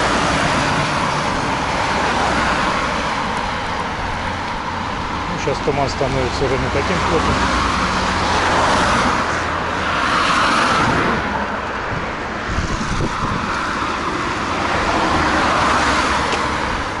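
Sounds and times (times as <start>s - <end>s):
cars passing close by: 0.0s - 17.0s.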